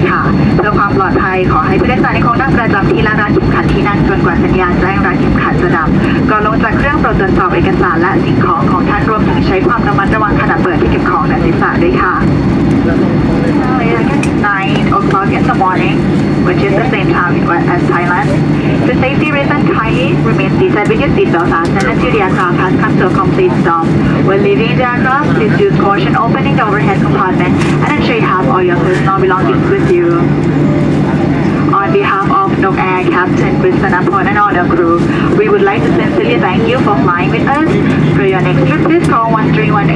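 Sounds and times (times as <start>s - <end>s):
aircraft cabin rumble: 0.0s - 39.9s
cabin pa announcement: 0.0s - 39.9s.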